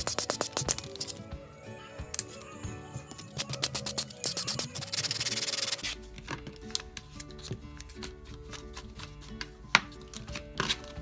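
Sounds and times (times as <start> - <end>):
nail file rasping: 0.0 - 1.2, 3.2 - 6.0
background music: 0.0 - 11.0.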